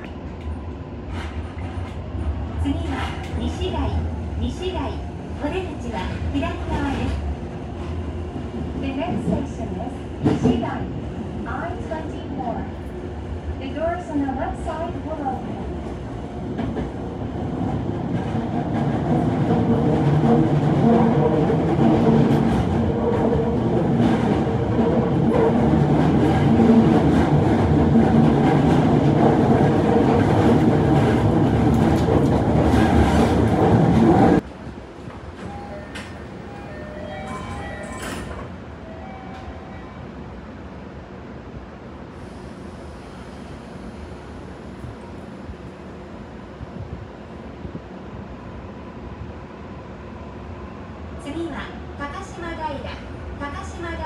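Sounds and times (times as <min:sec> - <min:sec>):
train rumble with rail clatter: 0:00.0 - 0:54.0.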